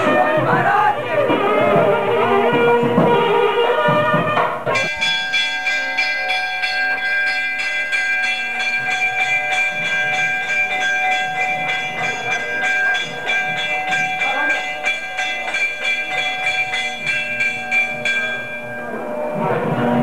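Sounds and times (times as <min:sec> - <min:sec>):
bells ringing rapidly: 0:04.7 - 0:20.0.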